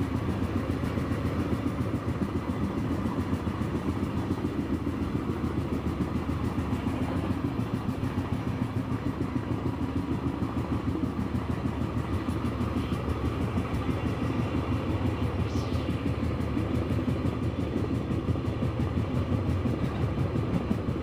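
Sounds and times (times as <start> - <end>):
vehicle rumble fluttering: 0.0 - 21.0.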